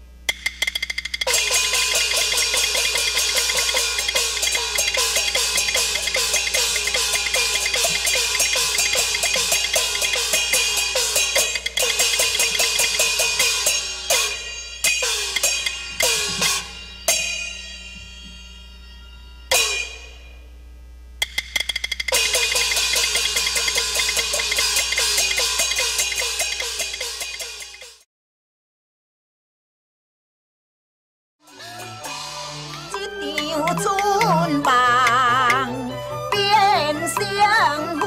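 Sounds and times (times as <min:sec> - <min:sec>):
percussion clatter: 0:00.3 - 0:18.5, 0:21.2 - 0:28.0, 0:31.6 - 0:35.7
cymbal crashes ringing: 0:00.3 - 0:20.5, 0:21.2 - 0:28.0, 0:31.5 - 0:33.0
gongs and cymbals rolling: 0:00.3 - 0:20.5, 0:21.2 - 0:28.0, 0:31.5 - 0:34.7.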